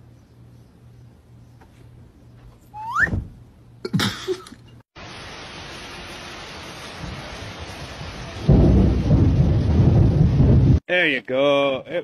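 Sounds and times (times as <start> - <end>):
steady rainfall: 5.0 - 10.8
thunder rumbling: 7.0 - 10.8.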